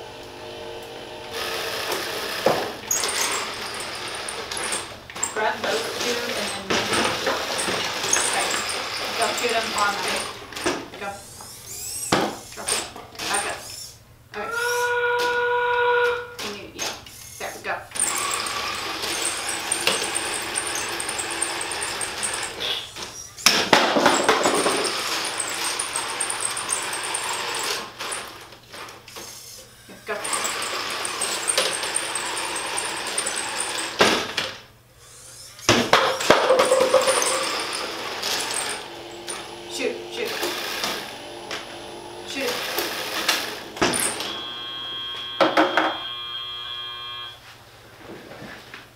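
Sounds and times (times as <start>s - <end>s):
robot motors whirring: 1.4s - 15.5s, 16.8s - 23.5s, 29.1s - 34.2s.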